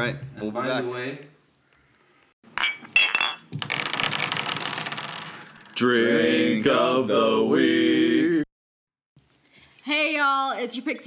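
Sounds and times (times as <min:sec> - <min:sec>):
drinking glasses clinking: 0:02.6 - 0:03.5.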